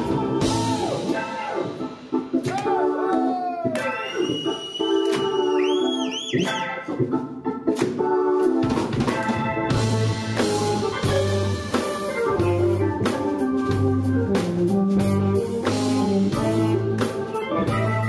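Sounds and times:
blues-rock band playing: 0:00.0 - 0:18.0
held bending lead guitar notes: 0:06.5 - 0:18.0.

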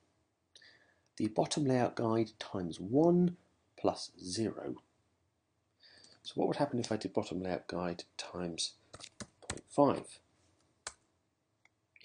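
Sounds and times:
computer keyboard or mouse click: 0:08.9 - 0:09.7.

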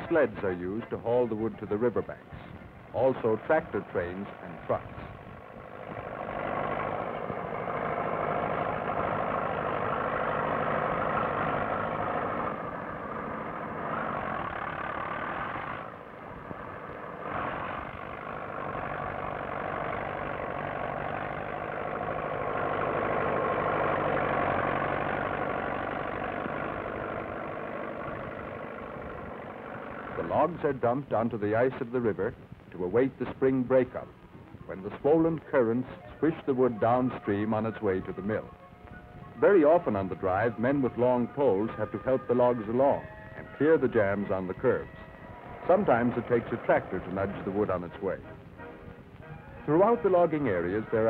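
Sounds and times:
vehicle engine running: 0:00.0 - 0:51.0.

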